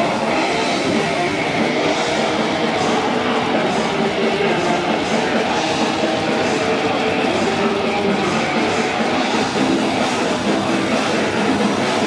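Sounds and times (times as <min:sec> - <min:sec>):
death metal band playing: 0:00.0 - 0:12.0
electric guitar riffing: 0:00.0 - 0:12.0.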